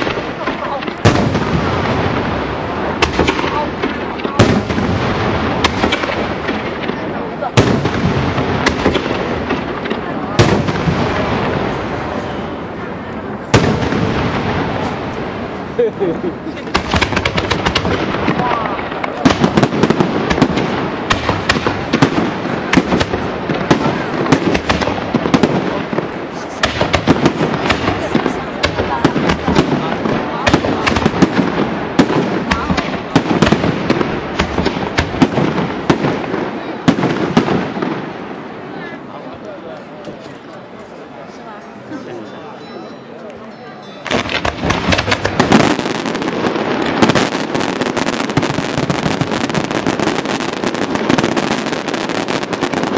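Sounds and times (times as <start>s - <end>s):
people talking: 0.0s - 1.2s, 3.3s - 4.8s, 5.6s - 7.8s, 9.0s - 13.6s, 14.5s - 16.8s, 18.2s - 19.6s, 22.4s - 31.4s, 32.1s - 33.0s, 38.6s - 46.0s
firework shells bursting: 16.6s - 38.0s, 44.0s - 52.9s.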